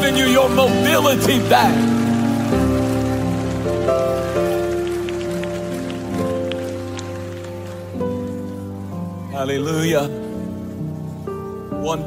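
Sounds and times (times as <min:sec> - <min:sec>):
soft instrumental worship music: 0:00.0 - 0:12.0.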